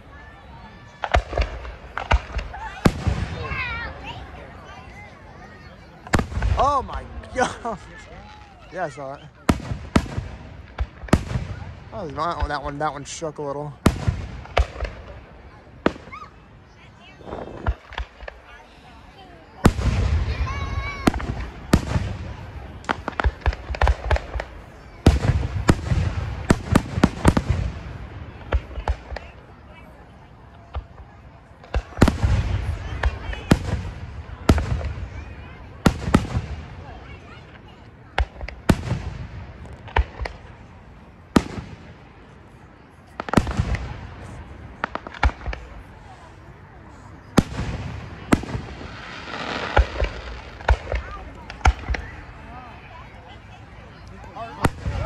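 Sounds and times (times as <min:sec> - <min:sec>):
fireworks bursting: 0:00.9 - 0:55.0.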